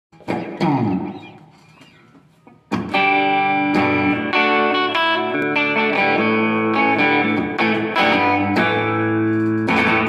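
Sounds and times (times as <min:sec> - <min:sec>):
electric guitar chords: 0:02.7 - 0:10.0
guitar pitch slide: 0:02.7 - 0:10.0.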